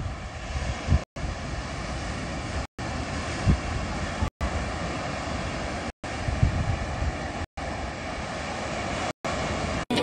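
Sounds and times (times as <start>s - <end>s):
ocean surf breaking: 0.0s - 10.0s
wind rumbling on microphone: 0.0s - 10.0s.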